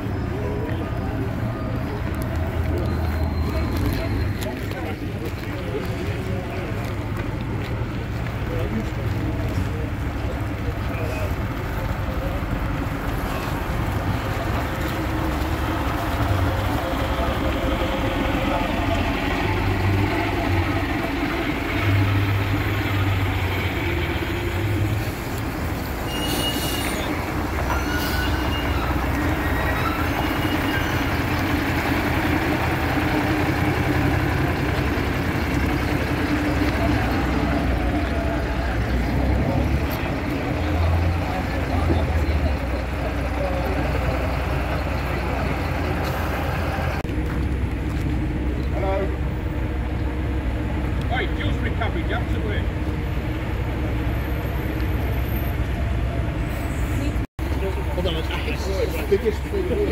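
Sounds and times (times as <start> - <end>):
bus diesel engine pulling away: 0.0 - 59.9
street background: 0.0 - 59.9.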